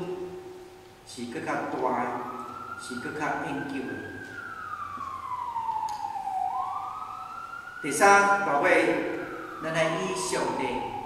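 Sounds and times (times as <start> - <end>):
emergency siren wailing: 0.0 - 11.0.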